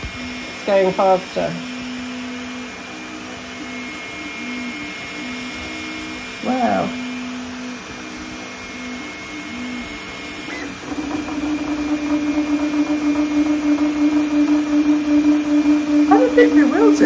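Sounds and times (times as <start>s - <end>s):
printer motors whining: 0.0s - 17.0s.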